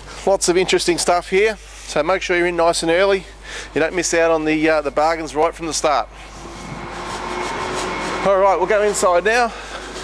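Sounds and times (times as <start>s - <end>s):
road noise: 3.0s - 10.0s
motor vehicle approaching: 4.4s - 10.0s.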